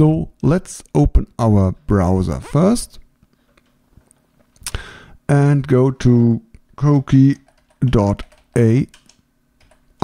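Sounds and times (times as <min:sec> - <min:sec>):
computer mouse clicks: 0:07.5 - 0:09.9.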